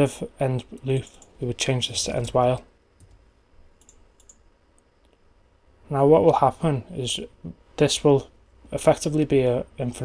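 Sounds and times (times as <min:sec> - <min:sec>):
keyboard typing: 0:03.0 - 0:03.2, 0:03.8 - 0:04.4.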